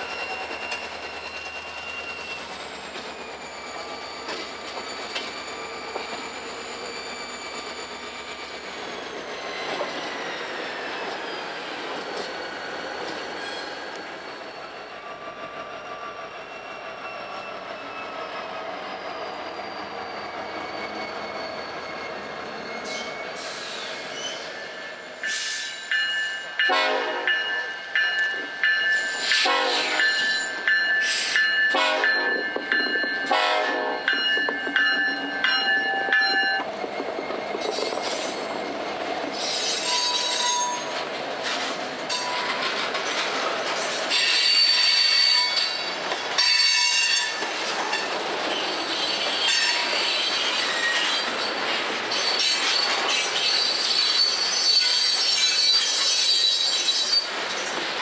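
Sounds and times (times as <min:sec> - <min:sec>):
steel wheels squealing: 0:00.0 - 0:26.7, 0:27.3 - 0:58.0.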